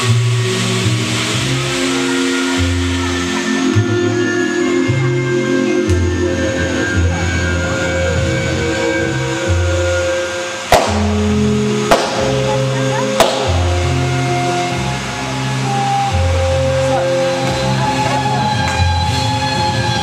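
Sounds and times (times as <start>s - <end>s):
waltz music: 0.1s - 20.0s
firework bangs: 9.3s - 16.1s.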